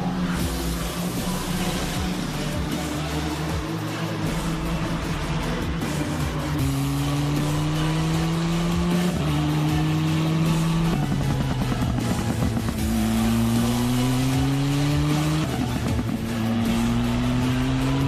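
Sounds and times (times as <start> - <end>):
music: 0.0 - 18.0
race car accelerating: 0.0 - 18.0.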